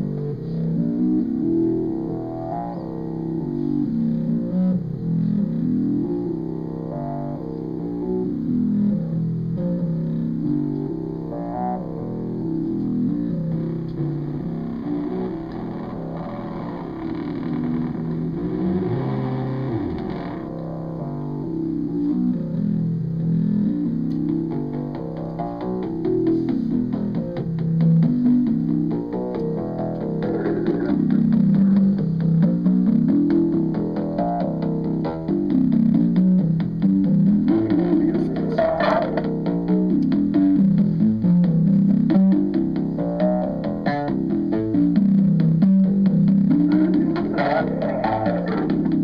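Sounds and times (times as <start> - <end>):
buzzy distorted synthesizer notes: 0.0 - 49.0
low pulsing bass: 0.0 - 49.0
fast ticking rhythm: 24.0 - 49.0.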